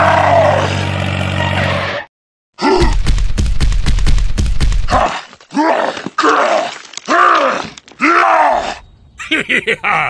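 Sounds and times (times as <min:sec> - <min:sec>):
person groaning with effort: 0:02.6 - 0:03.0.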